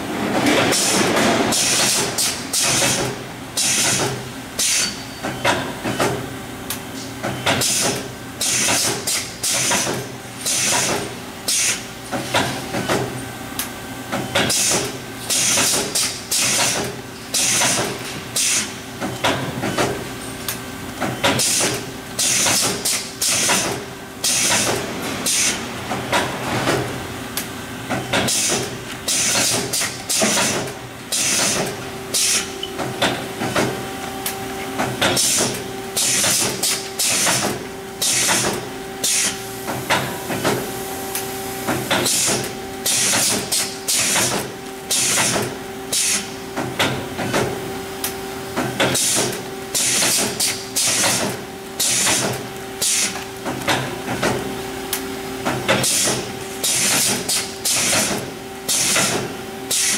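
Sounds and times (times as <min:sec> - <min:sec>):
steady mechanical hum: 0:00.0 - 0:59.9.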